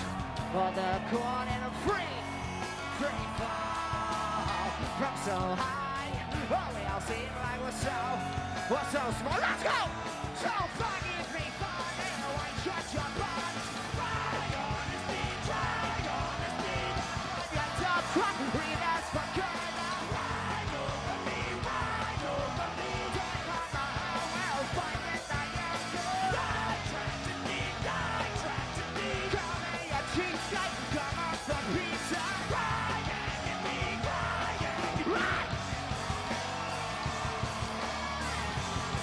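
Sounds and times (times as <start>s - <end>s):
punk rock band playing: 0.0s - 39.0s
person shouting vocals: 9.2s - 10.7s.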